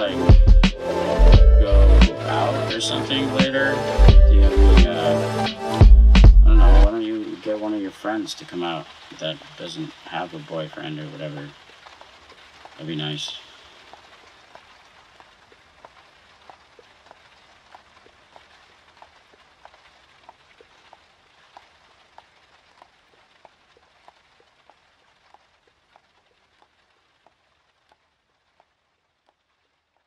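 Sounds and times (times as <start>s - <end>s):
crackling hiss: 0.0s - 30.0s
soft ticks: 11.6s - 29.4s.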